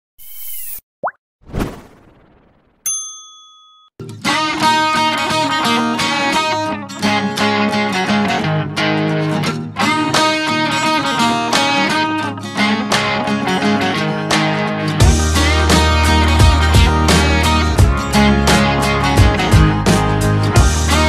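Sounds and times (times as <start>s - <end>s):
high swish: 0.2s - 2.6s
rising blip: 0.2s - 2.9s
ringing ding: 2.8s - 4.0s
music with strummed guitar: 4.0s - 21.0s.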